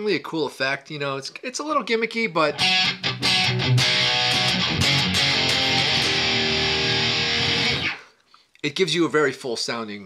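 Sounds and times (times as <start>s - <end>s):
distorted electric guitar chords: 2.5s - 8.0s.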